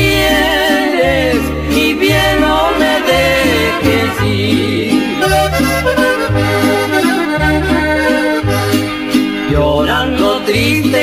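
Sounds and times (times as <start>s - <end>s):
accordion melody: 0.0s - 11.0s
alternating bass line: 0.0s - 11.0s.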